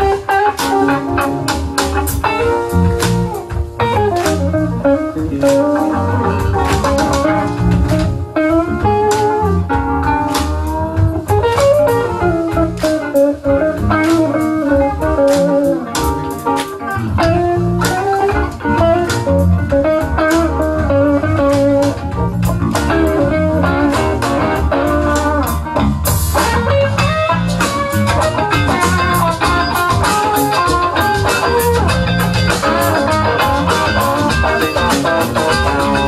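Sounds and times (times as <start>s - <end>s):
electric guitar: 0.0s - 36.0s
live band playing blues: 0.0s - 36.0s.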